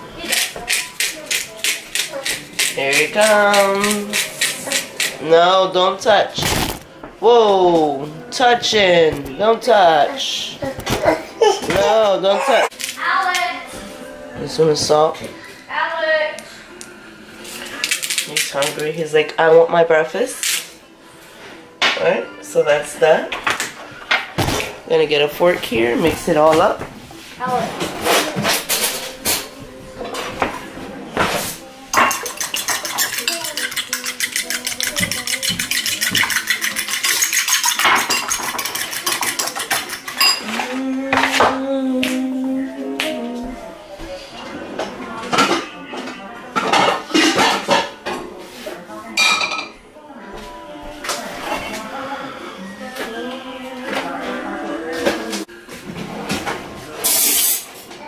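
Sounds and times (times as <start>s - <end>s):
fork beating eggs in bowl: 0.2s - 5.2s, 32.0s - 40.7s
kitchenware clattering: 25.5s - 41.6s, 44.4s - 48.3s, 49.2s - 49.8s.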